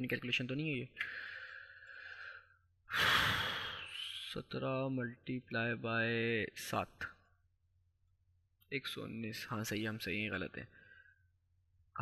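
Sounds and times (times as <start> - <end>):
man breathing into microphone: 1.0 - 4.1.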